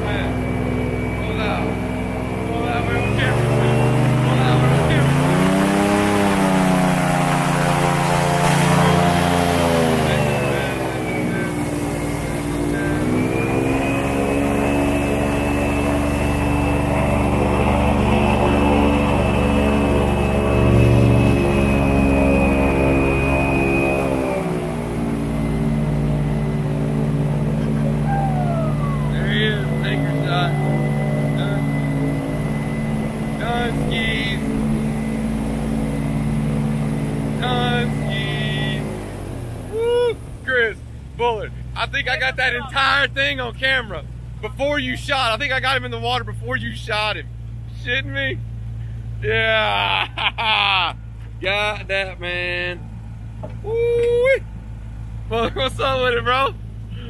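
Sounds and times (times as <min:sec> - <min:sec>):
boat motor being throttled: 0:00.0 - 0:57.0.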